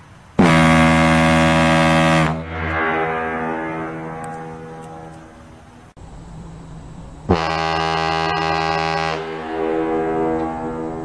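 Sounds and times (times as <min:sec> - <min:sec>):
ship's horn blast: 0:00.4 - 0:05.9, 0:07.3 - 0:11.0.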